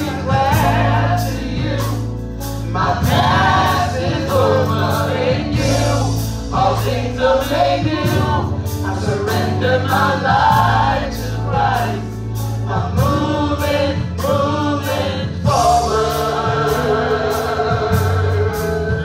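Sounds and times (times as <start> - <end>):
choir voices singing: 0.0 - 19.0
instrumental backing with steady beat: 0.0 - 19.0.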